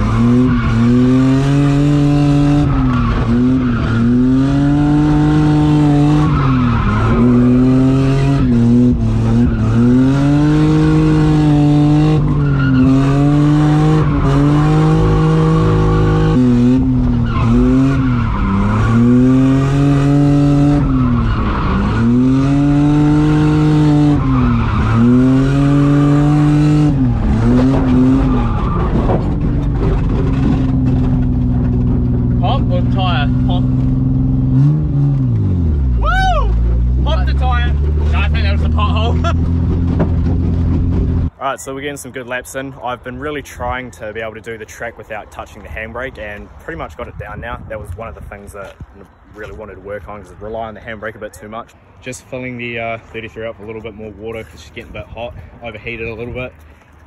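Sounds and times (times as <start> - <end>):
car engine revving: 0.0 - 41.3
tyre squeal: 12.0 - 26.2, 26.8 - 31.8.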